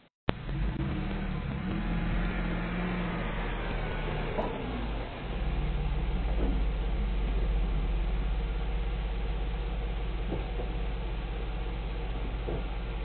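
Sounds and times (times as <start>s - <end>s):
van engine idling: 0.3s - 13.0s.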